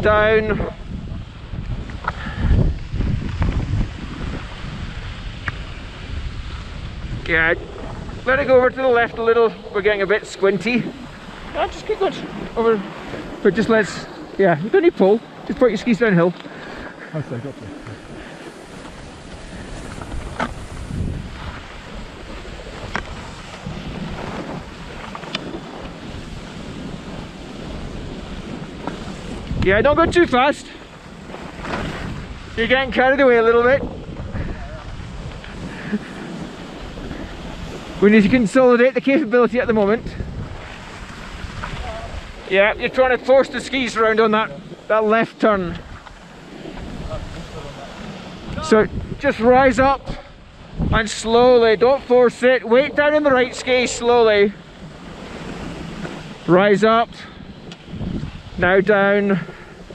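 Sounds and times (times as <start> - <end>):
wind buffeting microphone: 0.0 - 59.9
skis scraping on snow: 1.3 - 59.9.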